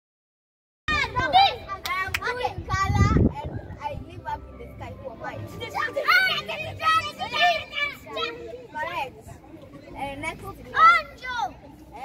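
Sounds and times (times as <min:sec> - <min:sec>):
children talking and calling out: 0:00.9 - 0:12.0.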